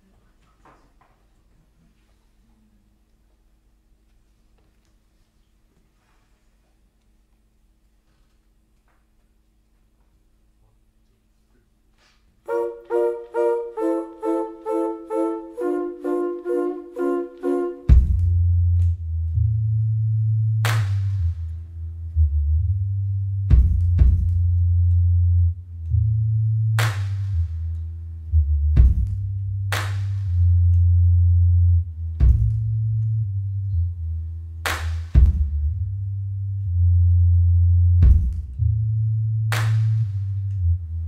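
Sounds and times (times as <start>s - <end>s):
deep held bass notes: 12.5s - 41.0s.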